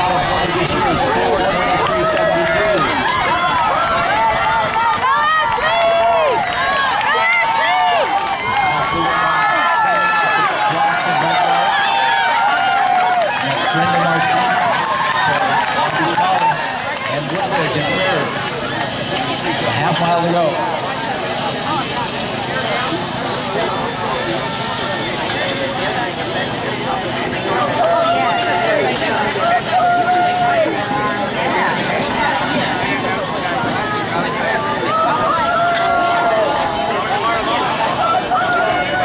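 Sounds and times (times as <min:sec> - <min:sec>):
spectators shouting and cheering: 0:00.0 - 0:39.0.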